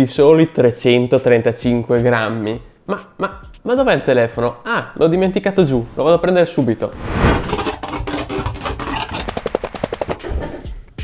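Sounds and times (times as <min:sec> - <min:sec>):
rapid sharp knocks and clatter: 0:07.6 - 0:10.4.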